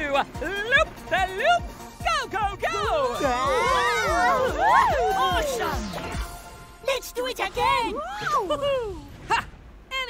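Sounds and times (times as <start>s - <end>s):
cartoon voices whooping: 2.8s - 5.9s.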